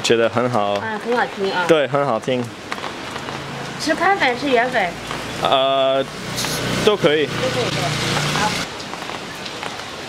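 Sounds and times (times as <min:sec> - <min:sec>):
rain falling: 0:00.0 - 0:10.0
person speaking: 0:05.4 - 0:08.7.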